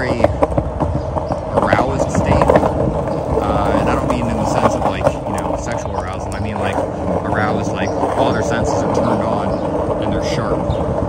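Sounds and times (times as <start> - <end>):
clicks over pavement cracks: 0.0 - 11.0
skateboard wheels rolling: 0.0 - 11.0.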